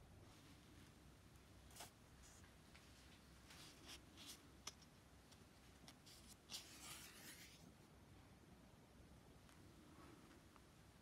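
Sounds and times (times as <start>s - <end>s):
paper rustling: 5.8s - 7.7s.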